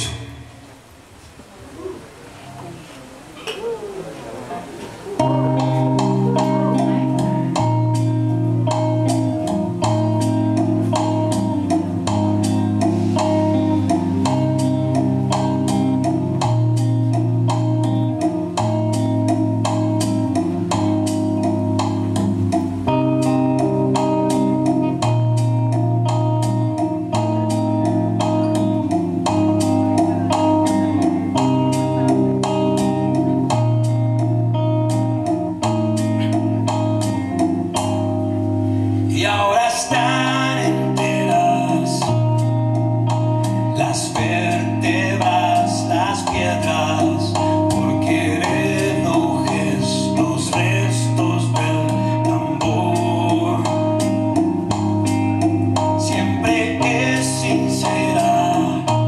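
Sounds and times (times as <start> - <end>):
electric guitar: 0.0 - 59.0
low bass line: 5.2 - 59.0.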